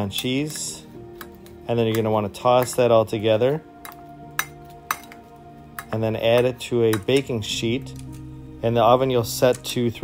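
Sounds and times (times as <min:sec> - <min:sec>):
soft background music: 0:00.0 - 0:10.0
metal tongs clinking in glass bowl: 0:03.8 - 0:05.2.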